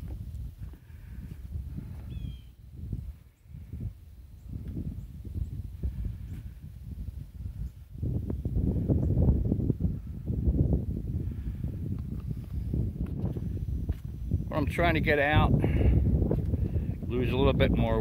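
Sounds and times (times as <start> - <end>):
wind buffeting microphone: 0.0 - 18.0
faint bird chirp: 2.1 - 2.6.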